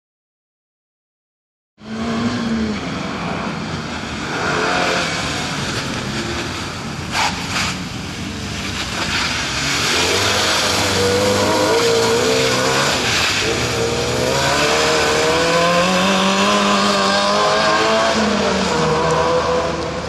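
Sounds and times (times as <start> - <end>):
car engine revving hard: 4.2 - 6.6, 9.2 - 20.0.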